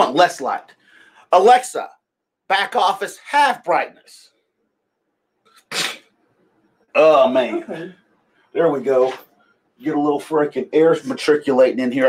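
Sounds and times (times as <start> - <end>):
man sneezing: 5.6 - 6.1.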